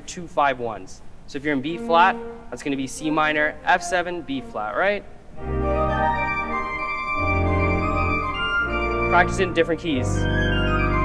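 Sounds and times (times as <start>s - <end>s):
organ playing sustained chords: 1.6s - 11.0s.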